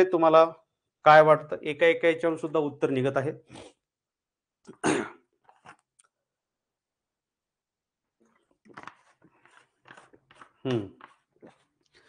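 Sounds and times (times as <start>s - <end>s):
plastic bottle rustling: 8.3s - 12.0s.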